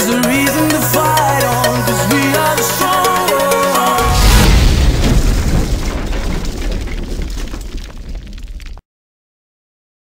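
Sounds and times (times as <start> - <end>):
deep boom with low rumble: 4.0 - 8.8.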